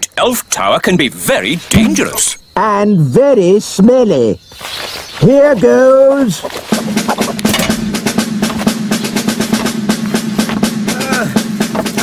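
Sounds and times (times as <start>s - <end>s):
snare drum roll: 6.7s - 12.0s
held low note: 6.8s - 11.2s.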